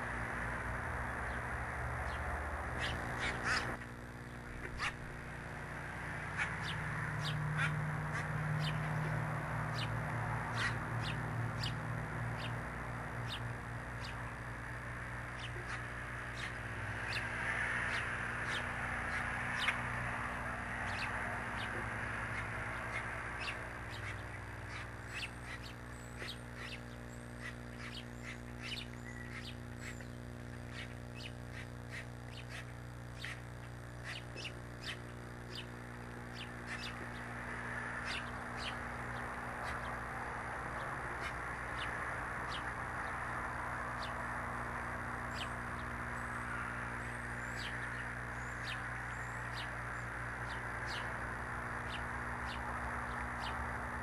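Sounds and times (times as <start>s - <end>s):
birds chirping: 0.0s - 54.0s
steady low hum: 0.0s - 54.0s.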